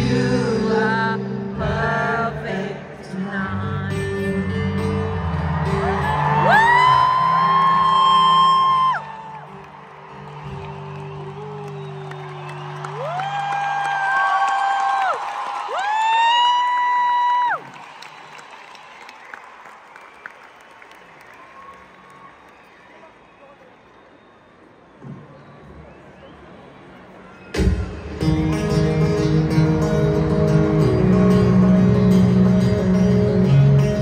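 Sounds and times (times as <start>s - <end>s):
live concert music: 0.0s - 17.8s, 25.0s - 34.0s
crowd noise with cheers: 4.8s - 28.3s.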